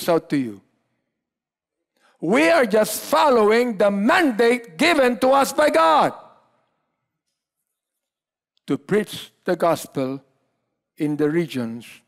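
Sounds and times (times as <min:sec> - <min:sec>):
man speaking: 0:00.0 - 0:00.7, 0:02.2 - 0:06.4, 0:08.6 - 0:12.0.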